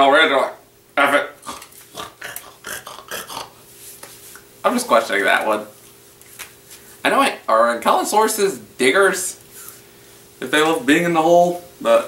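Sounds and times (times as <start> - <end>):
man making wordless vocal sounds: 1.0 - 3.6.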